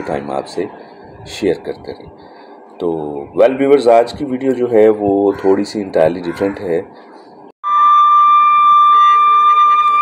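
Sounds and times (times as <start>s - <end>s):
flute-like sustained note: 7.6s - 10.0s.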